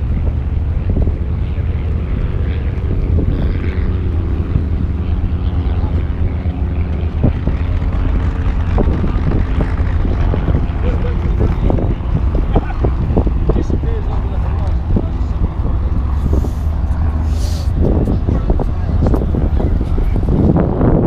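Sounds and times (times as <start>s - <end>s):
propeller aircraft engine drone: 0.0s - 21.0s
wind rumble on microphone: 0.0s - 21.0s
people talking: 8.8s - 20.4s.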